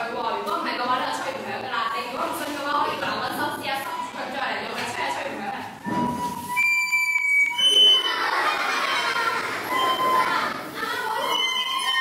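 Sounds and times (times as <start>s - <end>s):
recorders piping high notes: 5.8s - 12.0s
children's voices: 7.7s - 12.0s.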